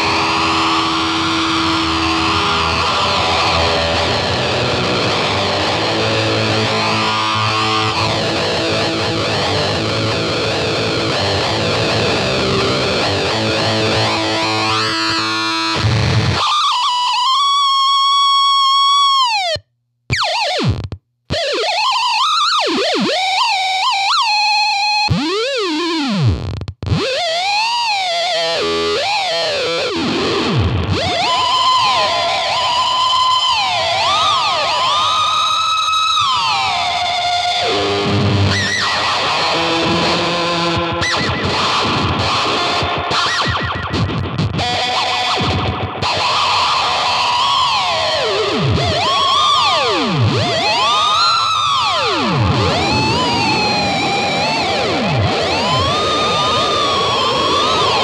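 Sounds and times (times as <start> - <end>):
distorted electric guitar squealing: 0.0 - 58.0.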